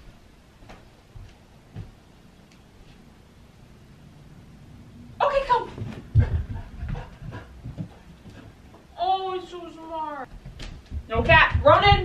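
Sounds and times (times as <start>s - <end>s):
puppy paws thumping on floor: 0.6s - 2.0s, 5.7s - 8.9s, 10.3s - 12.0s.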